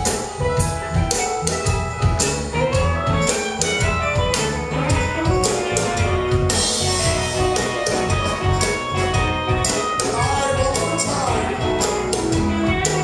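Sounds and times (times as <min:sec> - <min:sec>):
drum kit: 0:00.0 - 0:13.0
electric bass: 0:00.0 - 0:13.0
electric guitar: 0:00.0 - 0:13.0.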